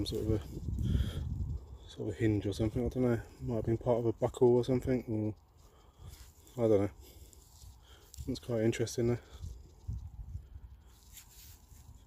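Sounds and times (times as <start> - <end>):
glove rustling: 10.8 - 12.0.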